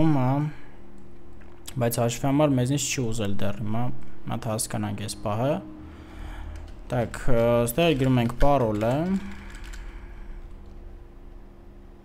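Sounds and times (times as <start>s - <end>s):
steady low hum: 0.0s - 12.0s
keyboard keystrokes: 6.5s - 10.0s.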